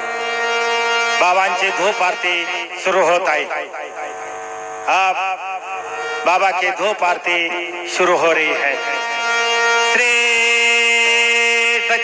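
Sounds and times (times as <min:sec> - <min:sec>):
steady held tone: 0:00.0 - 0:12.0
man singing: 0:01.2 - 0:04.1, 0:04.9 - 0:12.0.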